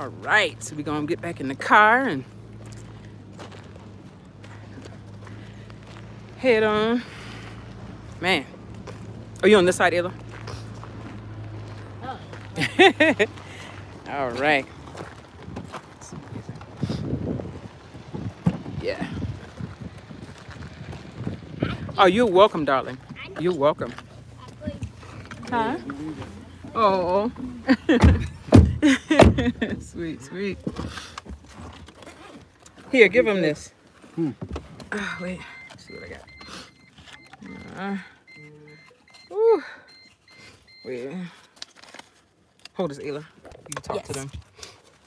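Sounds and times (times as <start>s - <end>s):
handling rumble: 1.6s - 33.0s
wind buffeting microphone: 15.3s - 22.2s
car warning chime beeping: 34.8s - 41.4s.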